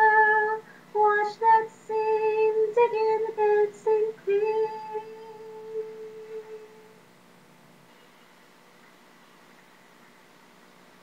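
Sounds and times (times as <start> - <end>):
woman singing a long note: 0.0 - 7.0
faint hiss: 0.0 - 11.0.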